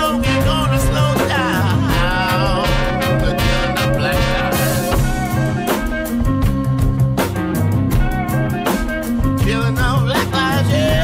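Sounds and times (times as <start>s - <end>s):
dj mix with bass and beat: 0.0s - 11.0s.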